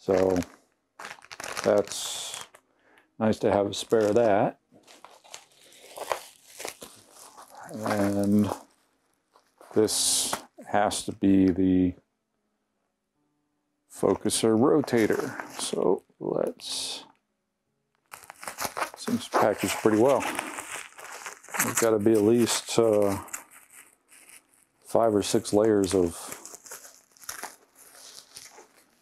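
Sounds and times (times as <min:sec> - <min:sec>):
bubble wrap crinkling and rustling: 0:00.0 - 0:02.6, 0:03.3 - 0:10.6, 0:14.0 - 0:16.0, 0:18.0 - 0:29.0.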